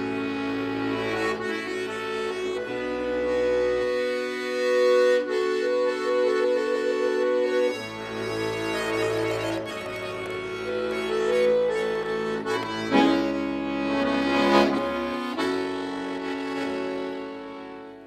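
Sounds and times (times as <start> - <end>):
button accordion playing chords: 0.0 - 18.0.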